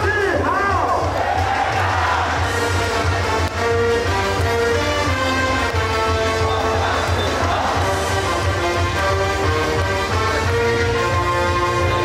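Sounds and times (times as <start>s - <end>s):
cheer song over stadium loudspeakers: 0.0s - 12.0s
crowd singing along: 6.4s - 8.2s.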